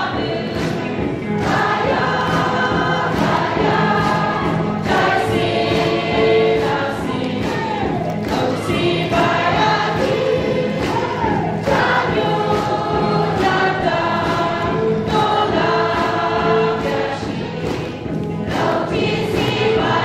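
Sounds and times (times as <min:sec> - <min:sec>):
congregation singing gospel song: 0:00.0 - 0:20.0
steady beat: 0:00.0 - 0:20.0.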